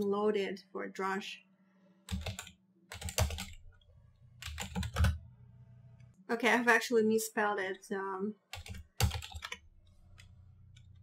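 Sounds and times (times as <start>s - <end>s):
typing on computer keyboard: 2.1s - 3.6s, 4.4s - 5.2s, 8.5s - 11.0s.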